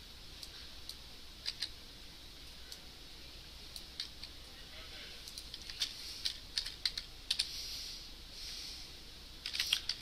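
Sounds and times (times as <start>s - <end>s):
computer keyboard typing: 5.3s - 7.5s.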